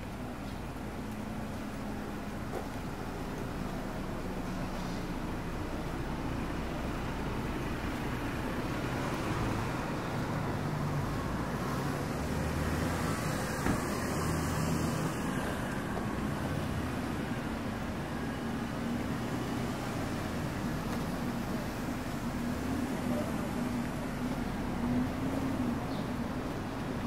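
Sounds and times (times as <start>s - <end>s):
city street traffic hum: 0.0s - 27.0s.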